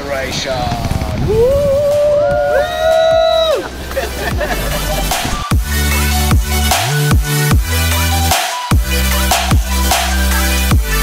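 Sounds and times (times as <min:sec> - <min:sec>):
background music: 0:00.0 - 0:11.0
people shouting woo: 0:01.3 - 0:03.7.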